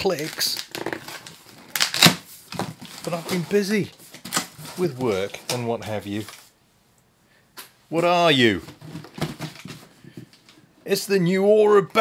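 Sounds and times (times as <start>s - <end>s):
packing tape ripping: 0.0s - 3.4s
cardboard rustling: 0.0s - 6.5s, 8.5s - 10.4s.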